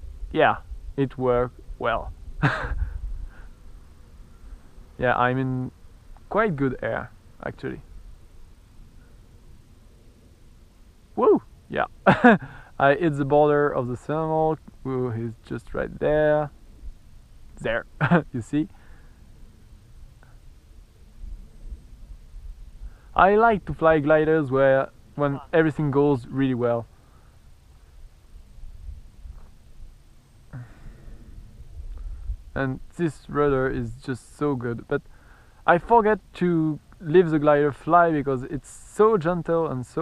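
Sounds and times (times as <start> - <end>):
wind on microphone: 0.0 - 5.1, 28.4 - 30.0, 30.6 - 34.0
steady low rumble: 0.0 - 40.0
man's breathy laugh: 2.4 - 3.4, 12.1 - 12.7, 30.6 - 31.2
faint breaths: 2.8 - 5.0, 8.8 - 9.6, 12.4 - 12.8, 18.7 - 20.6, 22.7 - 23.2, 26.8 - 28.2, 30.4 - 32.6, 35.0 - 35.7.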